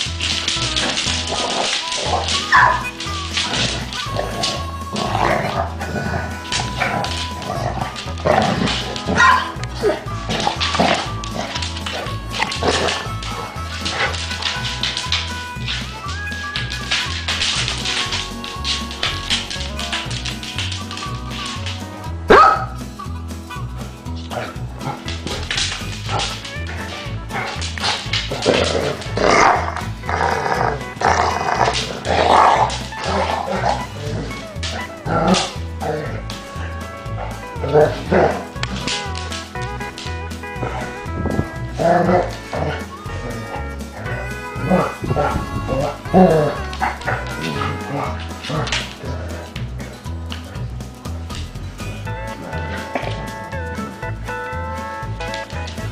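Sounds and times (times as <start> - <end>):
dogs growling: 0.0 - 15.9, 24.2 - 54.2
dogs barking: 0.0 - 16.0, 16.6 - 23.0, 24.2 - 50.1
background music: 0.0 - 55.9.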